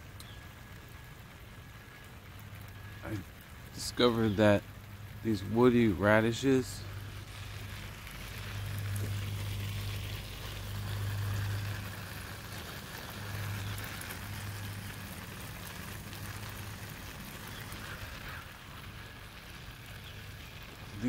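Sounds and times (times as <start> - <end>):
low steady hum: 0.0 - 21.0
sprinkler water pattering on leaves: 0.0 - 21.0.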